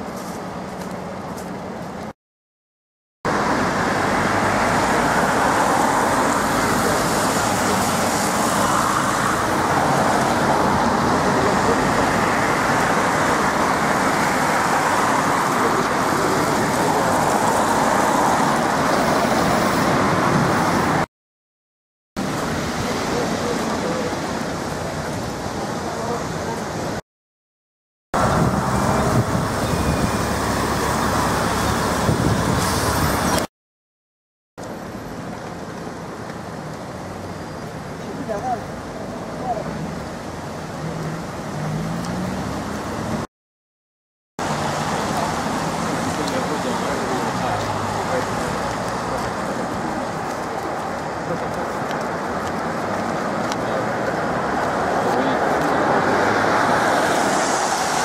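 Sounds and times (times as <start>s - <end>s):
traffic on wet street: 0.0s - 2.2s, 3.3s - 21.1s, 22.2s - 27.0s, 28.2s - 33.5s, 34.6s - 43.3s, 44.4s - 58.0s.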